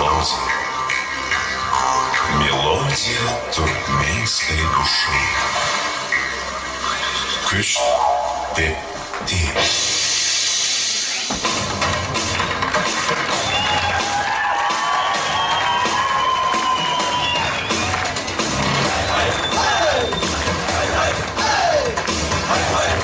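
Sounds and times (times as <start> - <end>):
audience noise: 0.0 - 23.0
folk dance music: 0.0 - 23.0
steady drum beat: 11.3 - 23.0.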